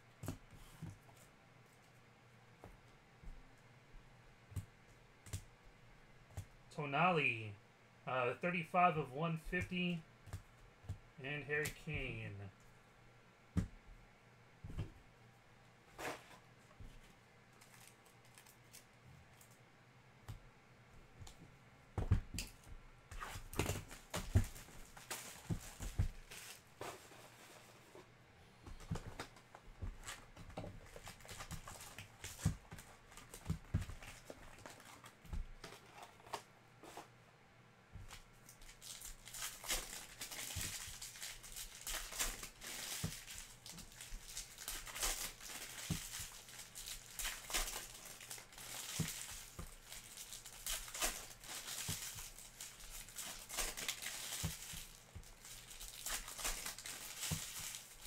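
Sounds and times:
foil wrappers crinkling and tearing: 0:17.6 - 0:19.5, 0:23.2 - 0:26.8, 0:30.0 - 0:36.4, 0:38.4 - 0:58.0.

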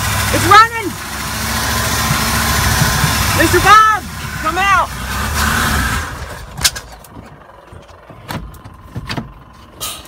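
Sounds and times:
van engine running: 0:00.0 - 0:10.0.

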